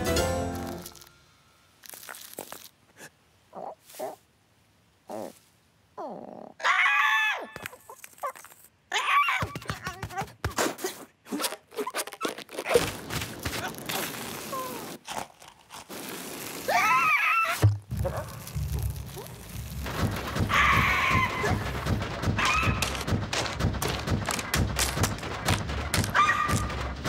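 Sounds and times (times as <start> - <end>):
low rumble of rapid thumps: 17.7 - 27.0
clicks and knocks: 19.7 - 27.0.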